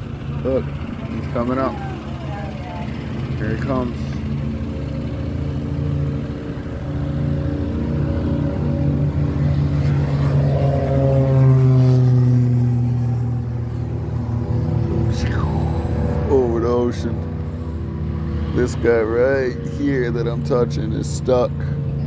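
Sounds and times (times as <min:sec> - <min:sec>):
propeller aircraft engine drone: 0:00.0 - 0:22.0.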